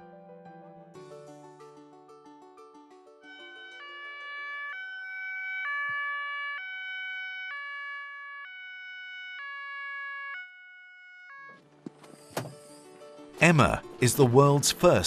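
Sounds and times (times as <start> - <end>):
ambulance two-tone siren: 3.2 - 11.6.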